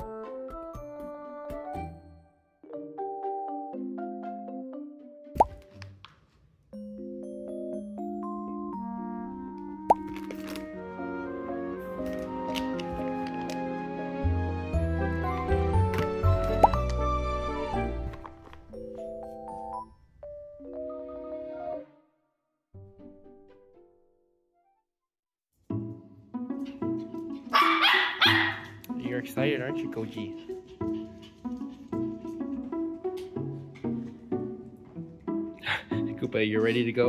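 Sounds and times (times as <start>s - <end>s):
light cute background music: 0.0s - 22.2s, 22.8s - 24.7s, 25.6s - 37.0s
small dog barking: 27.5s - 28.8s.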